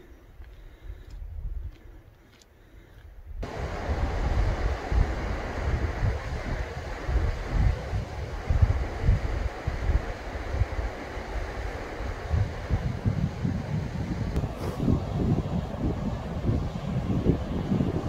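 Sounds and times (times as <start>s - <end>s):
wind buffeting microphone: 0.6s - 2.1s, 3.0s - 18.0s.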